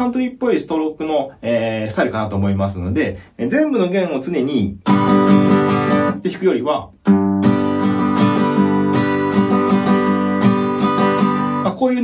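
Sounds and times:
acoustic guitar strumming: 4.8 - 6.2, 7.0 - 11.7.

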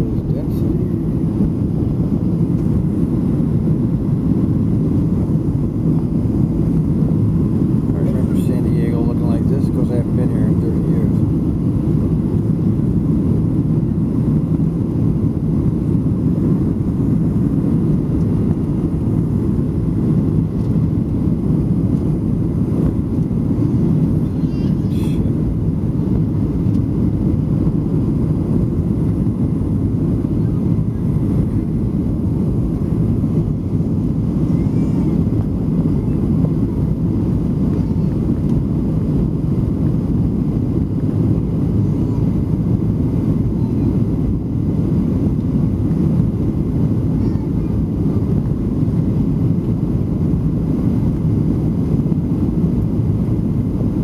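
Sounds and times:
airplane cabin engine rumble: 0.0 - 54.0.

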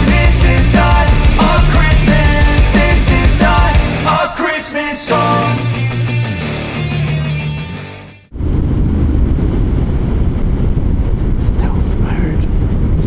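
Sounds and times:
rock music: 0.0 - 4.4, 5.0 - 8.3
wind noise on microphone: 8.3 - 13.0.

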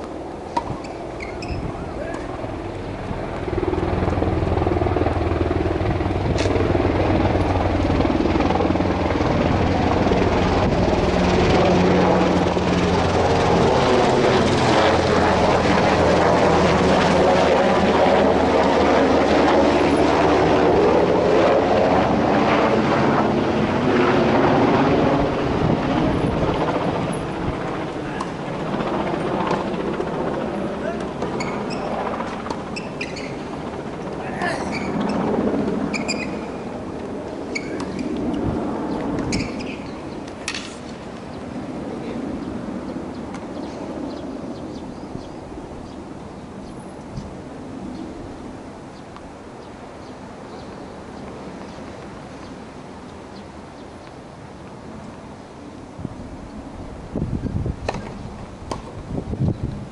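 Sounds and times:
aircraft engine drone: 0.0 - 59.9.

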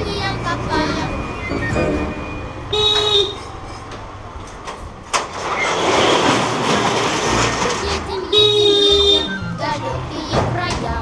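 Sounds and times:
car horn sounding: 2.1 - 3.5, 8.2 - 9.4.

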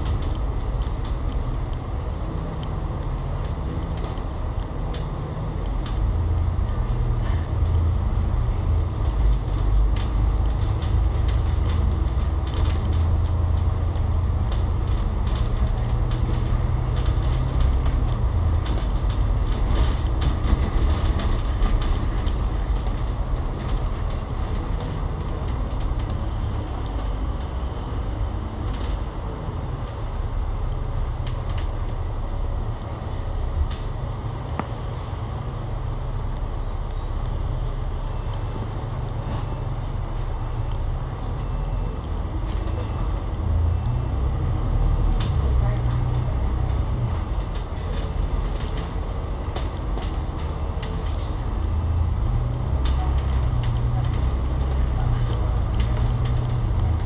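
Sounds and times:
bus engine rumble: 0.0 - 57.0
faint high beep: 37.9 - 54.6.

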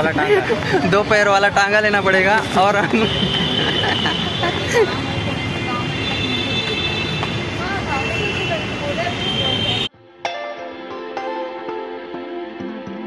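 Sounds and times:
man laughing: 0.0 - 1.1, 2.7 - 5.1
street traffic: 0.0 - 10.0
people on street: 0.0 - 11.3.

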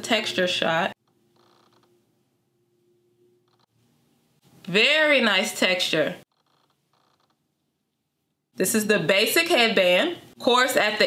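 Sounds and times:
faint steady hum: 1.0 - 4.8.

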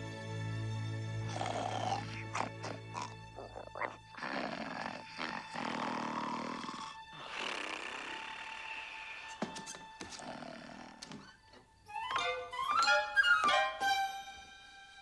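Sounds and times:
soft orchestral music: 0.0 - 15.0
cartoon dog snoring: 1.3 - 11.4.

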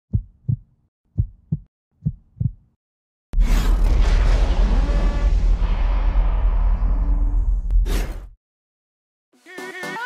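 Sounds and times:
heartbeat-like double thumps: 0.1 - 2.8
loud low boom: 3.4 - 7.8.

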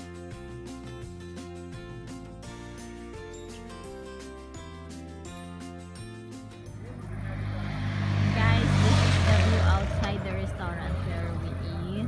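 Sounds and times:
vehicle passing close by: 6.7 - 12.0
people talking: 6.8 - 12.0.

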